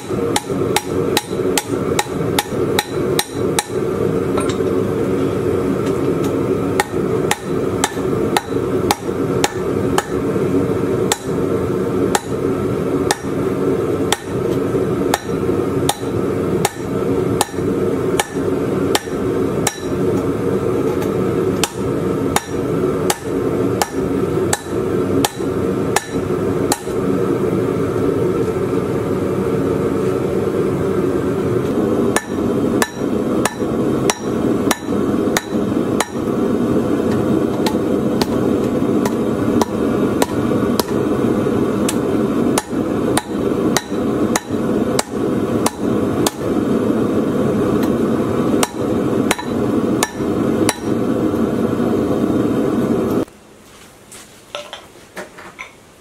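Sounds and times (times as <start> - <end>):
hammer striking steel on anvil: 0.0 - 4.8, 5.8 - 10.2, 11.1 - 11.4, 12.1 - 12.4, 13.1 - 13.4, 14.1 - 20.2, 20.9 - 27.0, 32.2 - 36.3, 37.1 - 41.0, 41.9 - 46.5, 48.6 - 51.0.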